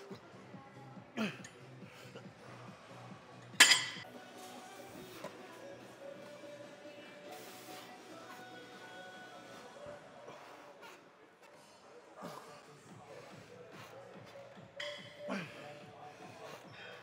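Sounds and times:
background music: 0.0s - 11.0s, 12.2s - 17.0s.

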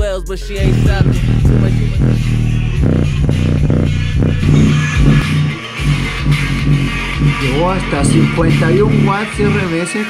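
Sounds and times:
rap track through subwoofer: 0.0s - 10.0s.

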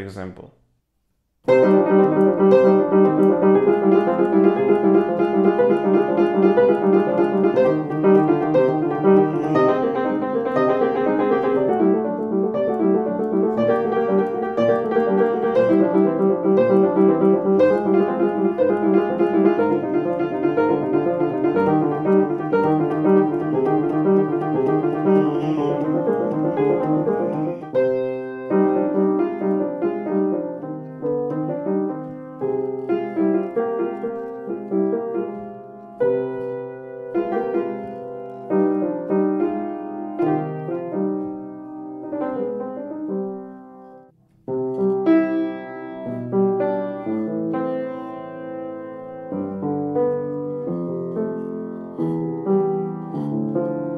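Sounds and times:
upright piano playing: 1.4s - 53.9s.

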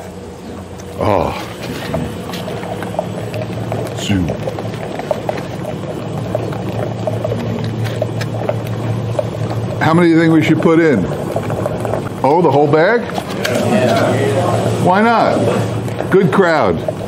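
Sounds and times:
batch freezer humming: 0.0s - 17.0s
cookies clicking and crunching: 0.6s - 17.0s.

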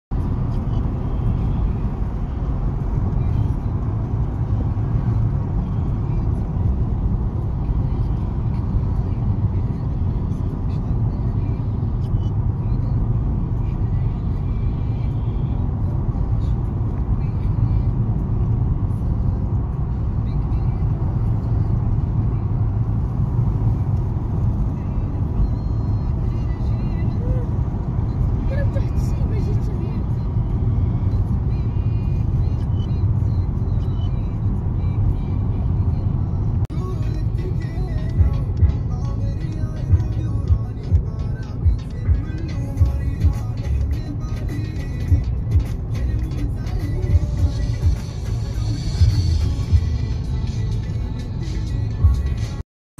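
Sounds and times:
car cabin road rumble: 0.1s - 52.6s.

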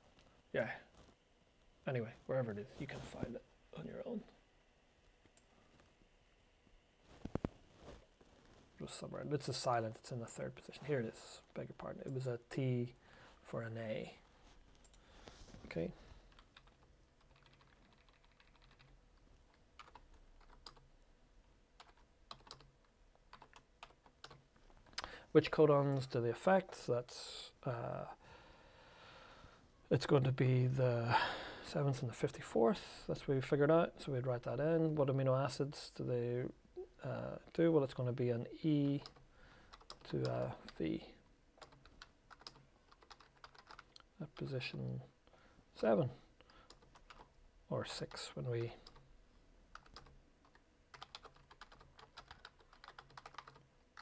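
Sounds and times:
computer keyboard typing: 16.3s - 20.9s, 21.8s - 22.7s, 23.3s - 24.4s, 39.0s - 40.8s, 41.6s - 44.0s, 46.6s - 47.3s, 49.7s - 54.0s.

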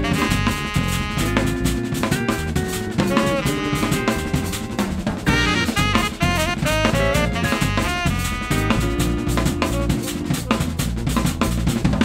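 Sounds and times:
saxophone: 0.0s - 10.8s
drum kit playing busily: 0.0s - 12.0s
electric bass: 0.0s - 12.0s
electric guitar: 0.0s - 12.0s.

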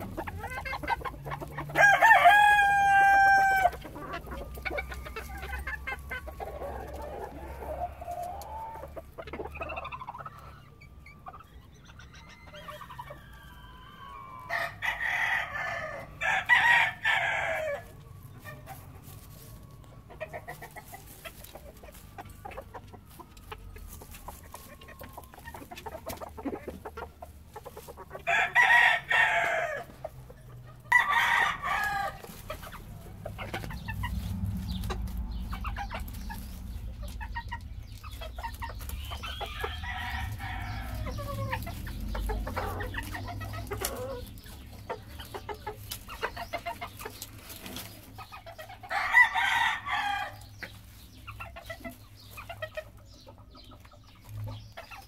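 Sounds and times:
roosters crowing: 0.0s - 52.4s
hens clucking: 0.0s - 55.0s.

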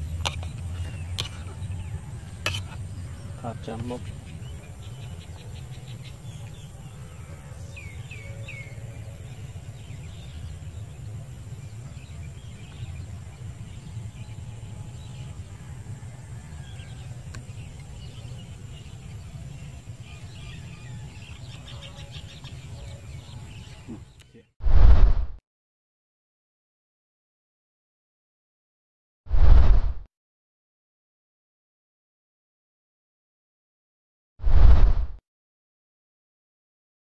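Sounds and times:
small birds chirping: 0.0s - 15.6s, 16.6s - 24.5s.

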